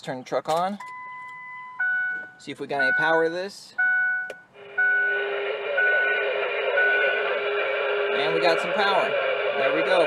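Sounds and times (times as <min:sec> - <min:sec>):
dashboard warning chime beeping: 0:00.8 - 0:07.2
radio static hiss: 0:05.4 - 0:10.0.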